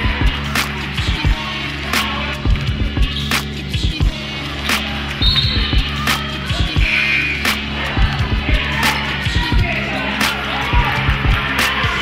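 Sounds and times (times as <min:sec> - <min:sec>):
background music: 0:00.0 - 0:12.0
sneaker squeaks: 0:04.7 - 0:06.0.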